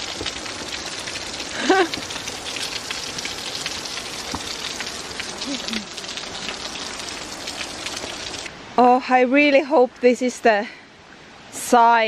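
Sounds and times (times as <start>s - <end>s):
water dripping from rock: 0.0s - 8.5s.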